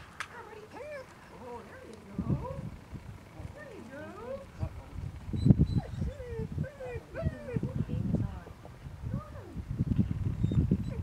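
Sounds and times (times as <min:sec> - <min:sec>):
dog whining and yipping: 0:05.4 - 0:07.7, 0:10.4 - 0:11.0.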